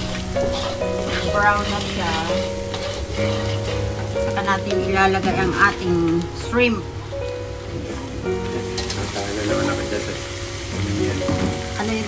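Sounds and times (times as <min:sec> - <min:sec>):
background music held notes: 0:00.0 - 0:12.0
oil sizzling in a wok: 0:00.0 - 0:12.0.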